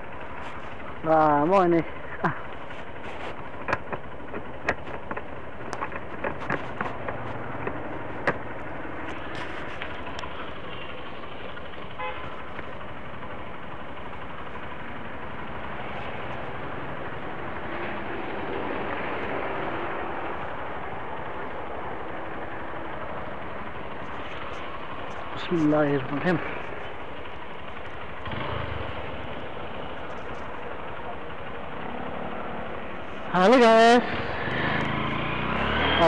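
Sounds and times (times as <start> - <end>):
motorcycle engine running: 0.0 - 36.0
wind and road noise: 0.0 - 36.0
horn toot: 12.0 - 12.3.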